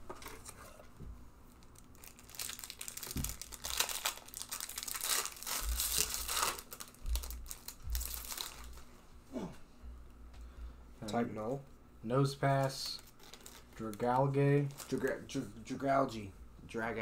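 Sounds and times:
foil wrappers crinkling and tearing: 1.5 - 8.9, 12.5 - 15.3.

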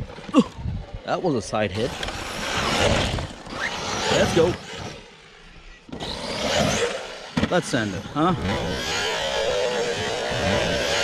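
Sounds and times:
rc truck motor rushing: 0.0 - 11.0.

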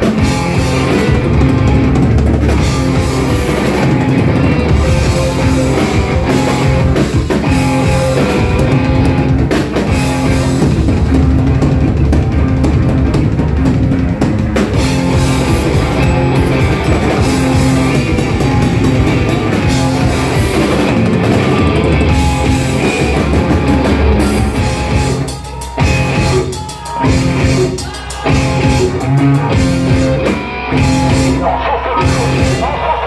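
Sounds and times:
distorted electric guitars: 0.0 - 33.0
drum kit: 0.0 - 33.0.

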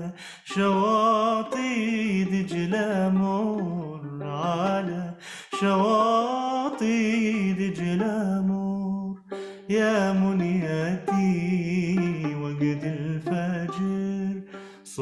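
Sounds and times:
man singing: 0.0 - 15.0
plucked violin: 0.0 - 15.0.

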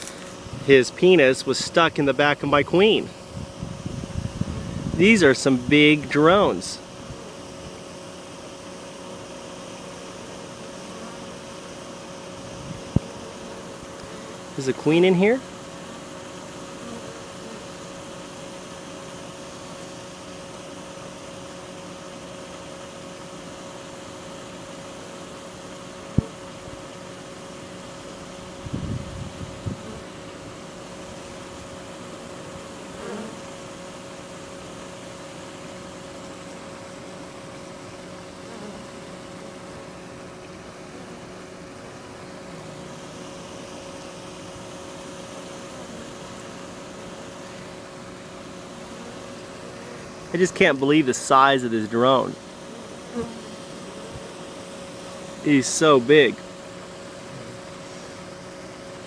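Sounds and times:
bee swarm buzzing: 0.0 - 59.0.

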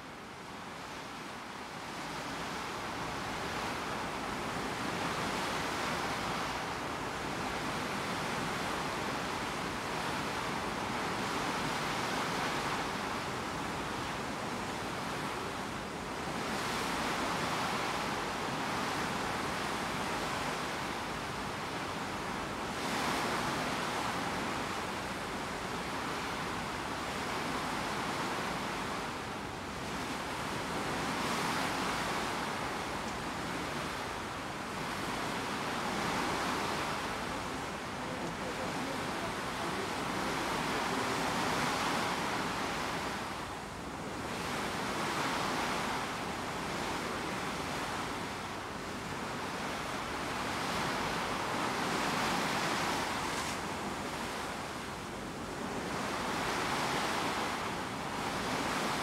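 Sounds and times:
water rushing along ship hull: 0.0 - 59.0
wind: 0.0 - 59.0.

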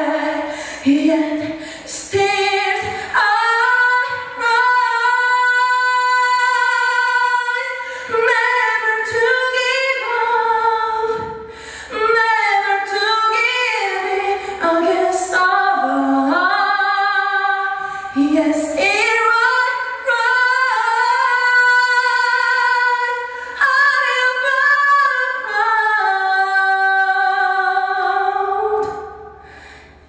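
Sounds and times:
woman singing unaccompanied: 0.0 - 29.2.

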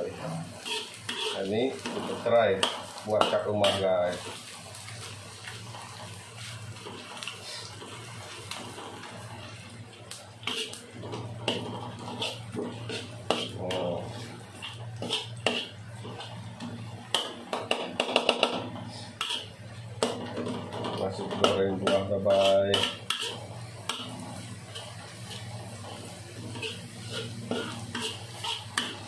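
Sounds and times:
metal spatula scraping a wok: 0.4 - 4.4, 10.4 - 16.4, 18.8 - 29.0.

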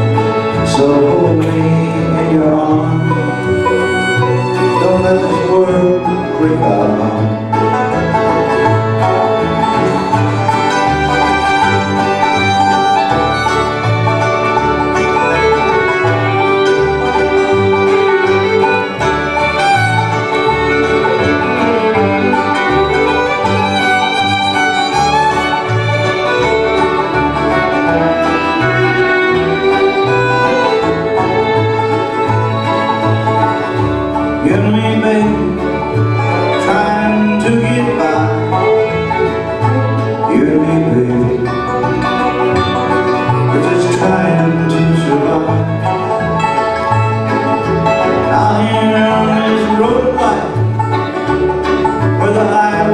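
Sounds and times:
acoustic guitar: 0.0 - 52.9
banjo: 0.0 - 52.9
fiddle melody: 0.0 - 52.9
mandolin: 0.0 - 52.9
upright bass thumping: 0.0 - 52.9.

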